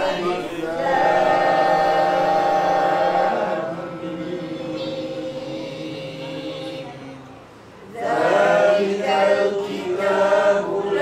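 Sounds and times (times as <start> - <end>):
person chanting recitation: 0.0 - 7.2.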